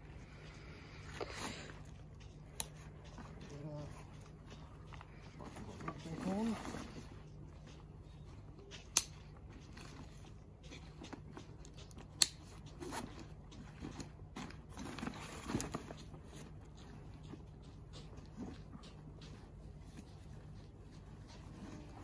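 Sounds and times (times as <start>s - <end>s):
nylon fabric and straps rustling: 0.0s - 22.0s.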